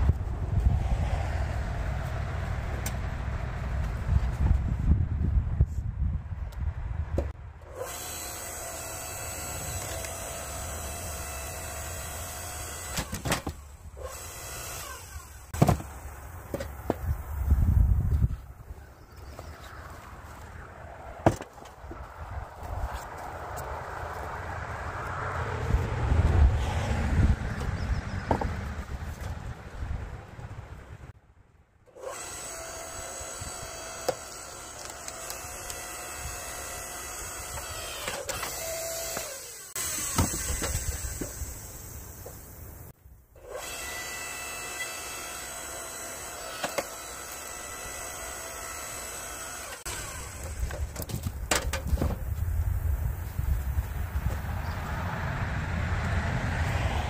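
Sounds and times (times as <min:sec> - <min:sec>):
log splitter motor running: 0:07.8 - 0:13.2, 0:32.0 - 0:42.6, 0:43.4 - 0:50.8.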